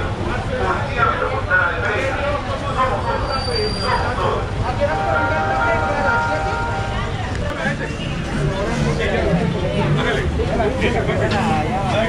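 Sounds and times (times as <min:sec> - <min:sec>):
low rumble of street traffic: 0:00.0 - 0:12.0
voices speaking: 0:00.7 - 0:12.0
steady held chord tone: 0:04.9 - 0:07.2.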